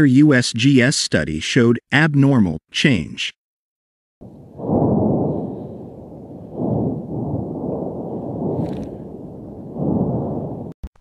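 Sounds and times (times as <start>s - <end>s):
volcano rumbling booms: 4.2s - 10.8s.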